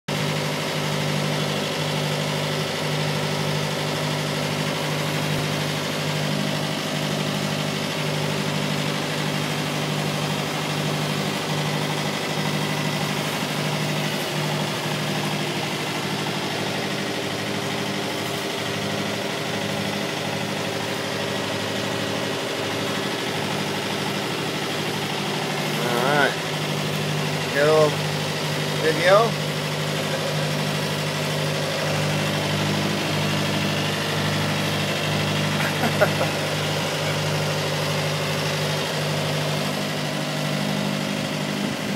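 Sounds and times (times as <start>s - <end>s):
motorboat engine droning: 0.1s - 41.9s.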